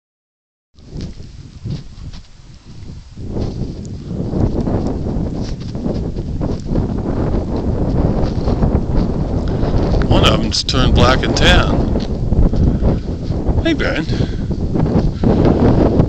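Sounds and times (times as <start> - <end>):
wind buffeting microphone: 0.8 - 16.0.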